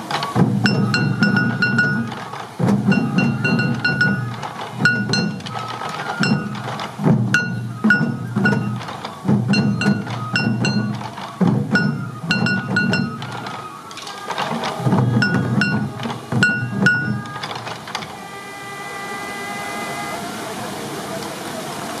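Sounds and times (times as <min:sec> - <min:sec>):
taiko drums in driving rhythm: 0:00.0 - 0:18.1
steady held tone: 0:02.8 - 0:13.9.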